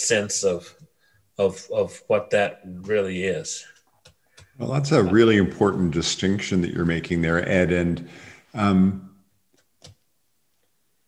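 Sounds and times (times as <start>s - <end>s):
man's voice: 4.6s - 9.1s.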